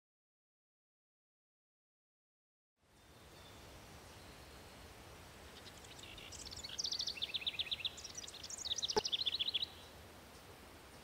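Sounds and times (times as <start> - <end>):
faint outdoor hiss: 2.8 - 11.0
songbird trilling: 5.6 - 9.9.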